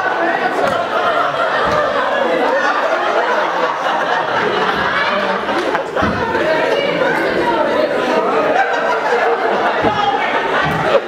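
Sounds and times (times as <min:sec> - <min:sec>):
audience chatter: 0:00.0 - 0:11.0.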